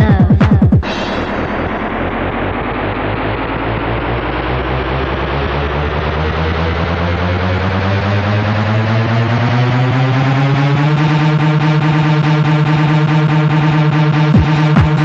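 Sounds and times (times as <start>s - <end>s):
electronic dance music build-up: 0.0s - 15.0s.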